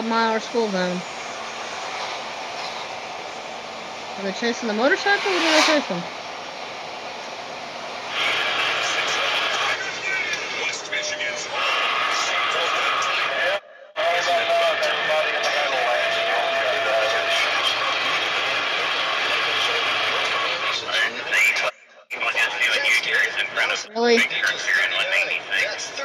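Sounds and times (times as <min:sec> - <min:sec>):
indistinct radio voices: 0:00.0 - 0:03.0, 0:04.2 - 0:06.1, 0:08.1 - 0:26.0
truck road and engine noise: 0:00.0 - 0:11.8.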